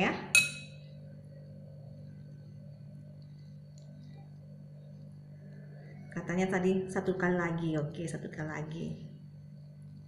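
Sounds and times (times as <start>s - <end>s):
metal spoon clinking glass bowl: 0.4s - 0.8s.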